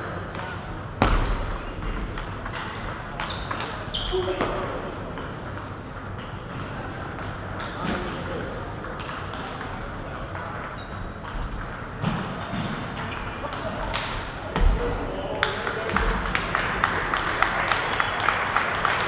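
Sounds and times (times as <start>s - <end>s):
large hall hum: 0.0s - 19.0s.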